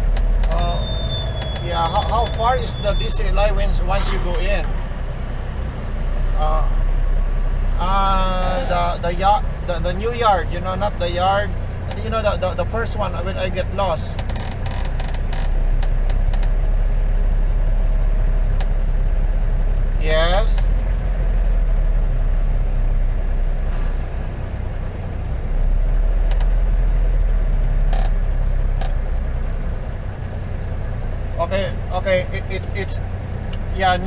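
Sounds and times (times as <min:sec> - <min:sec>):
diesel truck engine rumbling: 0:00.0 - 0:34.0.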